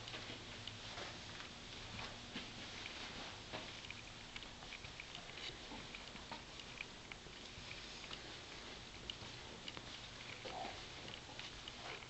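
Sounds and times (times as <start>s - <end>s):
faint room noise: 0.0s - 12.0s
small scattered clicks and ticks: 0.0s - 12.0s.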